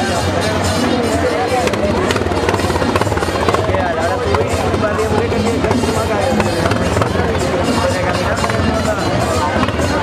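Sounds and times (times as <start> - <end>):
crowd noise: 0.0 - 10.0
rapid clicking percussion: 0.0 - 10.0.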